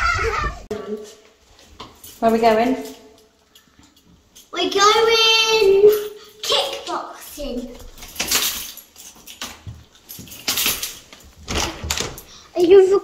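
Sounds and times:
children talking: 0:00.0 - 0:01.2, 0:04.6 - 0:07.8
keys jangling in a lock: 0:01.7 - 0:04.5, 0:05.8 - 0:12.4.

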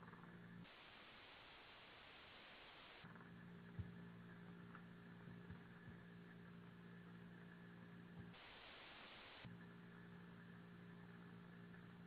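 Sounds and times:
faint electrical hum and hiss: 0:00.0 - 0:12.0.

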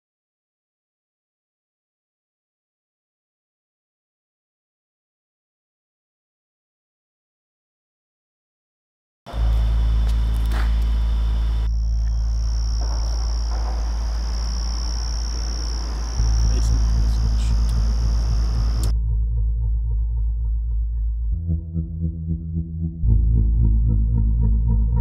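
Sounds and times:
night insects chirring: 0:09.3 - 0:18.9
faint sustained musical tones: 0:09.3 - 0:25.0
low soundtrack drone: 0:09.3 - 0:25.0.

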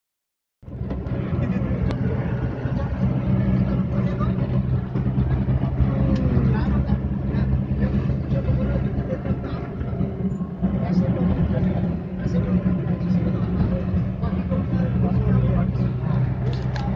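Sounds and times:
vehicle engine and road noise: 0:00.6 - 0:16.9.

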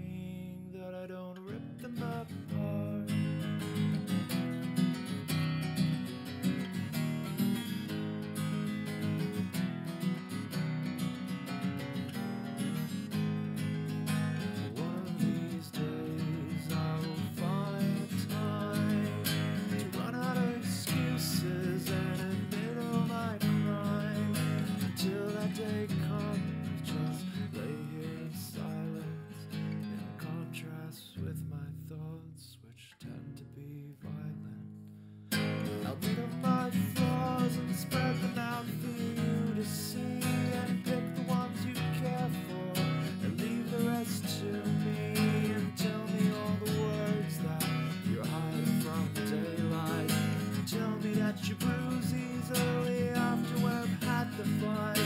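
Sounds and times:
acoustic guitar strumming: 0:01.4 - 0:32.1, 0:34.0 - 0:55.0.

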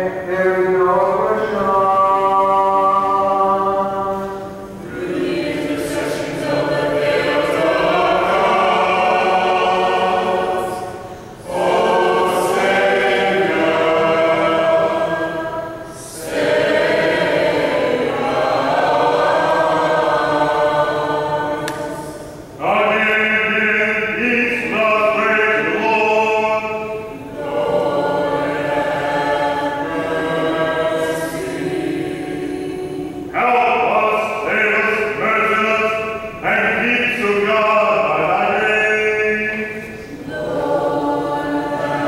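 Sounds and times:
mixed choir chanting unaccompanied: 0:00.0 - 0:42.0.

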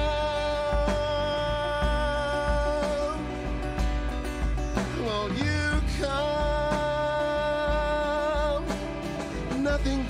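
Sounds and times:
worship band playing: 0:00.0 - 0:10.0.

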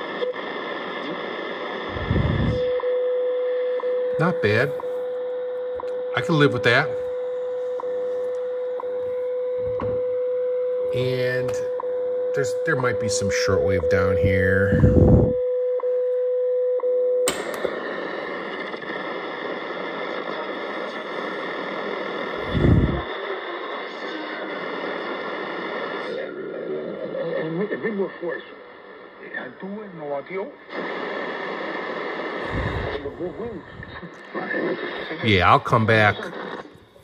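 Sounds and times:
radio static: 0:00.0 - 0:04.8, 0:06.2 - 0:08.2, 0:11.0 - 0:11.8, 0:12.4 - 0:15.4, 0:17.6 - 0:37.0
faint radio station voices: 0:00.0 - 0:05.0, 0:05.8 - 0:10.0, 0:10.7 - 0:15.4, 0:17.6 - 0:37.0
steady radio tone: 0:00.0 - 0:16.1, 0:17.6 - 0:37.0.

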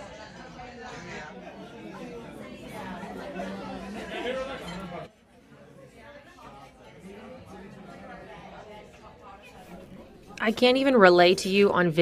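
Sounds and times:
restaurant chatter: 0:00.0 - 0:12.0.

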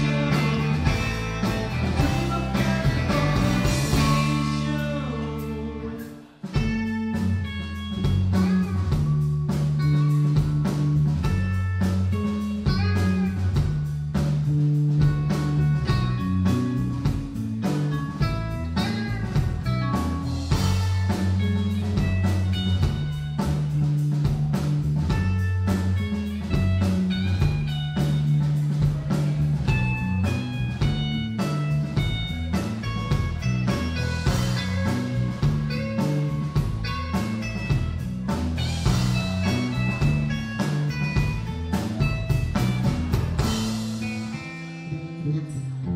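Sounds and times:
live rock band playing: 0:00.0 - 0:45.9.

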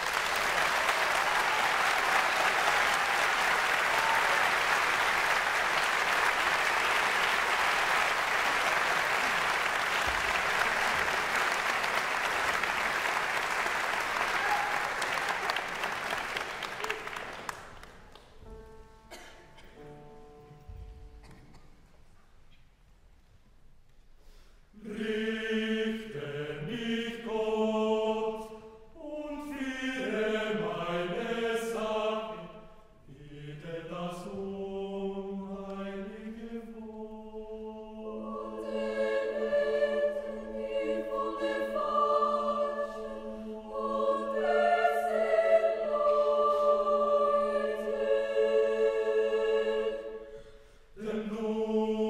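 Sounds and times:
large mixed choir singing: 0:00.0 - 0:17.4, 0:24.7 - 0:52.0.

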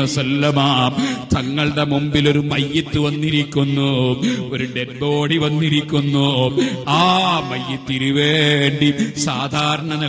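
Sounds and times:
man chanting: 0:00.0 - 0:10.0.

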